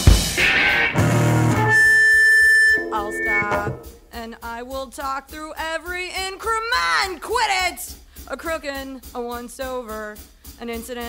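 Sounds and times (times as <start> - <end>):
high sustained note: 1.3 - 4.2
low held note: 1.5 - 4.1.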